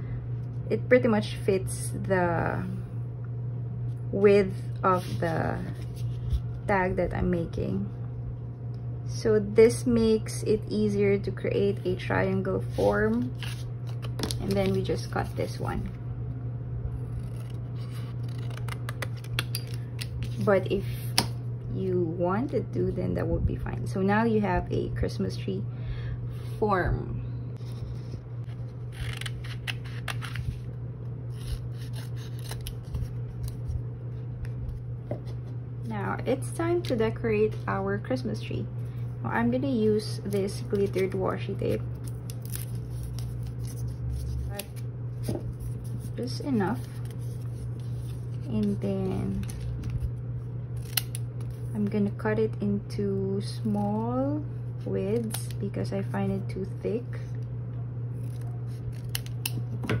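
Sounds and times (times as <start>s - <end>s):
steady low hum: 0.0s - 60.0s
scissors snipping paper: 17.1s - 20.4s, 28.9s - 30.5s, 31.3s - 33.7s, 50.8s - 51.6s, 58.2s - 59.7s.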